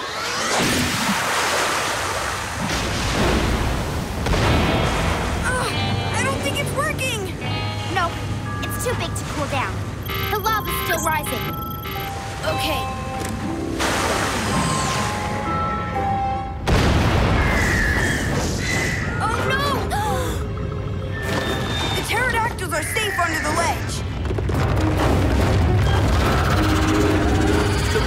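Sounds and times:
dramatic background music: 0:02.7 - 0:28.0
high squawking calls: 0:21.1 - 0:24.1.

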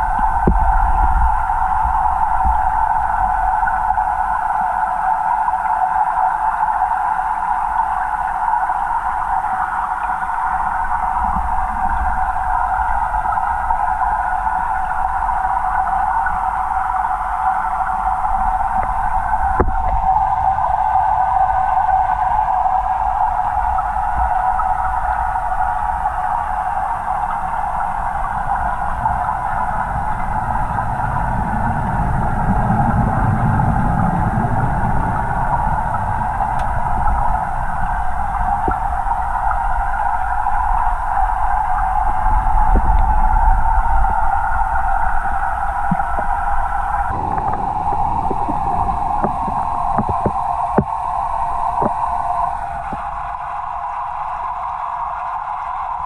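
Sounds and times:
underwater hum: 0:00.0 - 0:56.0
faint ticks: 0:36.5 - 0:36.7.

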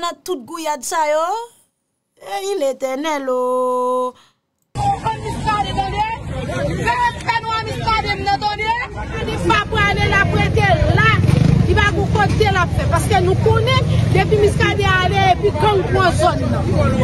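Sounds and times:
low street noise: 0:04.8 - 0:17.0
people talking over one another: 0:04.8 - 0:17.0.

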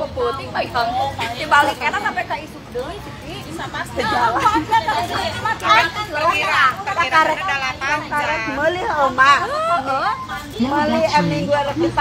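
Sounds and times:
people chatting: 0:00.0 - 0:12.0.

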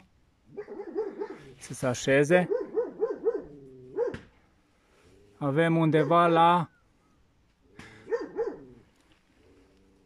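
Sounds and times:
dog barking: 0:00.5 - 0:01.5, 0:02.4 - 0:04.3, 0:06.0 - 0:06.3, 0:08.1 - 0:08.7.

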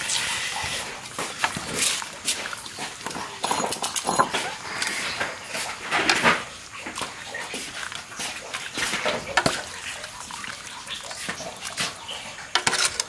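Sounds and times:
liquid pouring splash: 0:00.0 - 0:12.9
metal ladle clinking in pot: 0:09.3 - 0:10.2, 0:12.5 - 0:13.0.

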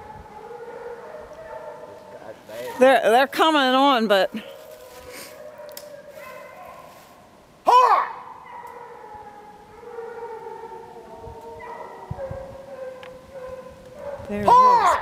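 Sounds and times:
distant hounds baying in chorus: 0:00.0 - 0:02.8, 0:04.4 - 0:15.0
loud close hound call: 0:07.6 - 0:09.0, 0:12.8 - 0:15.0.

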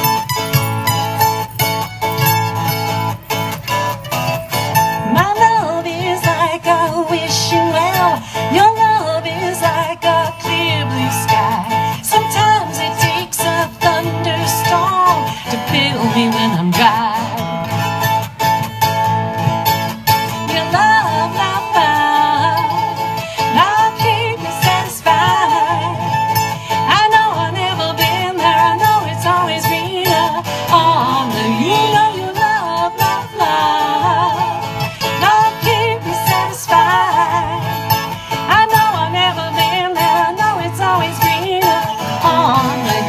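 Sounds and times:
country band playing: 0:00.0 - 0:43.0
strummed acoustic guitar: 0:00.0 - 0:43.0.

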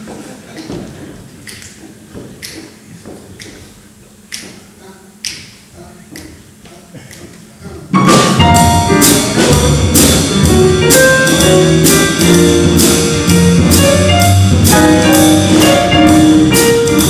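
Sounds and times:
finger snaps: 0:04.3 - 0:04.6, 0:05.2 - 0:06.4
jazz band playing: 0:07.9 - 0:17.0.

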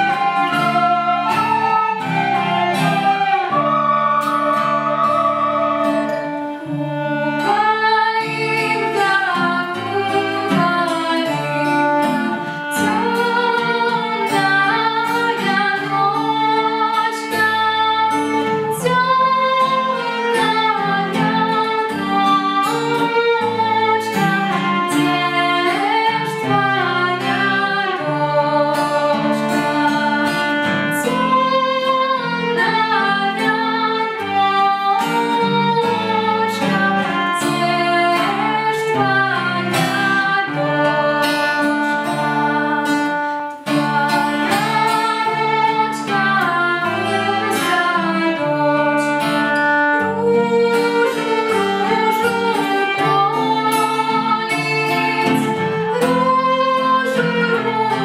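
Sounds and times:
acoustic guitar strumming: 0:00.0 - 0:58.0
children singing: 0:00.0 - 0:58.0
violin: 0:00.0 - 0:58.0.

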